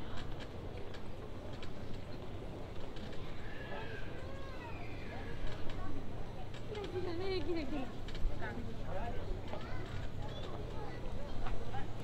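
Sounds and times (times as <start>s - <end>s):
people talking faintly: 0.0s - 12.0s.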